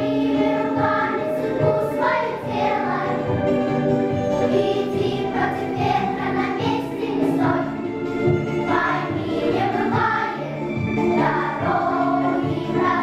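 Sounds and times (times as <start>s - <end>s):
girls' choir singing: 0.0s - 3.6s, 4.3s - 13.0s.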